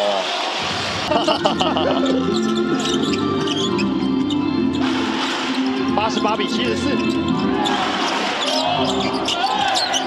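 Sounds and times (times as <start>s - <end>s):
crowd noise: 0.0s - 10.0s
arena music with held notes: 1.1s - 10.0s.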